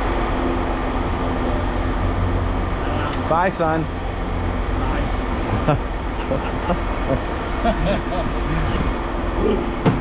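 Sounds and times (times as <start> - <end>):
machinery rumbling: 0.0 - 10.0.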